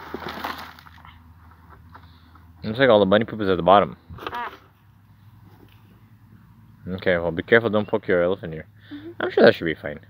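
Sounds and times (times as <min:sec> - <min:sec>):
faint background noise: 0:00.0 - 0:10.0
person saying ah: 0:04.2 - 0:04.6.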